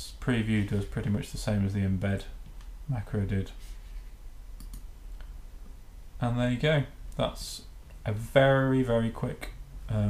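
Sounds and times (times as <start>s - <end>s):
computer mouse clicks: 4.6s - 4.9s.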